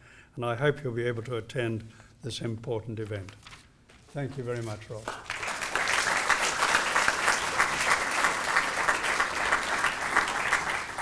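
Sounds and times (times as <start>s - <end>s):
audience applauding: 5.0s - 11.0s.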